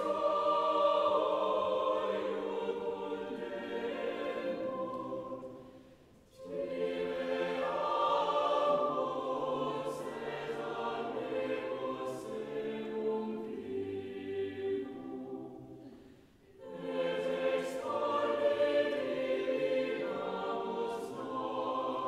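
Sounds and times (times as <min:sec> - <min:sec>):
choir singing slowly: 0:00.0 - 0:22.0.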